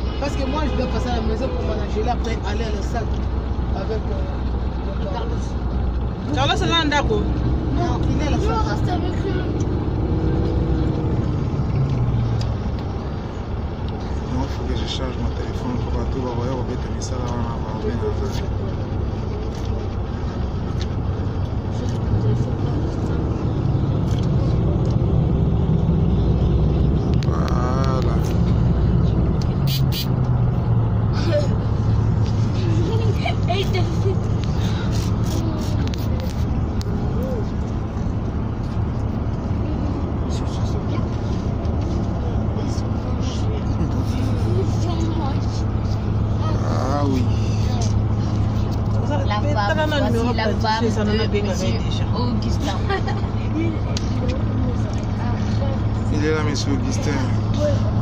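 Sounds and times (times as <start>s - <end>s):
road and engine rumble: 0.0s - 58.0s
voices chattering: 0.0s - 58.0s.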